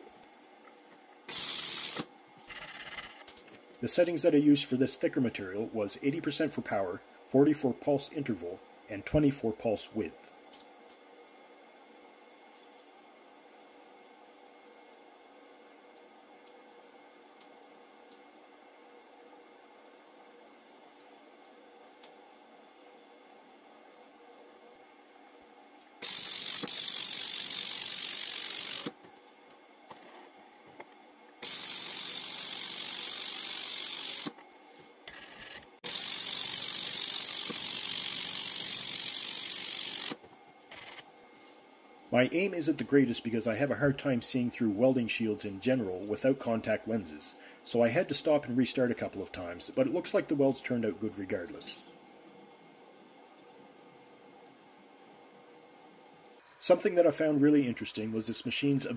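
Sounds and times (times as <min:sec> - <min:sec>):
faint steady hum: 0:00.0 - 0:58.9
laser welder buzzing bursts: 0:01.2 - 0:03.3, 0:26.0 - 0:29.0, 0:31.4 - 0:34.4, 0:35.2 - 0:41.1.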